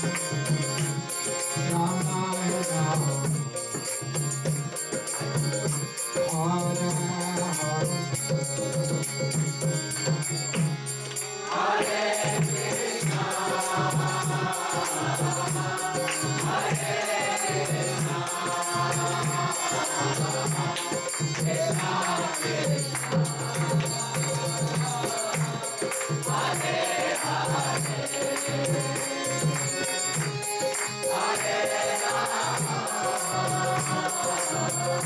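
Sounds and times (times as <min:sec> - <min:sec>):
harmonium: 0:00.0 - 0:35.0
congregation chanting: 0:11.1 - 0:35.0
steady drum beat: 0:11.6 - 0:35.0.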